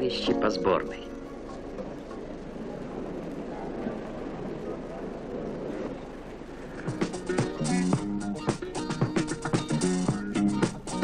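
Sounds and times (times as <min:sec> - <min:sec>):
crowd murmur: 0:00.0 - 0:08.2
music with sharp rhythmic beat: 0:06.9 - 0:11.0.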